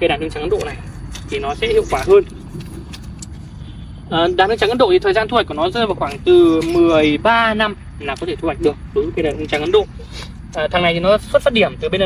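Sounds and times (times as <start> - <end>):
man speaking: 0.0 - 2.3, 4.1 - 12.0
low outdoor rumble: 0.0 - 12.0.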